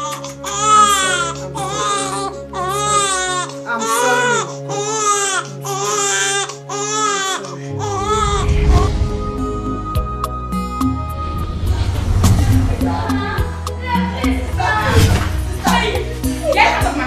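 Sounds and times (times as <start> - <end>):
infant crying: 0.0 - 8.8.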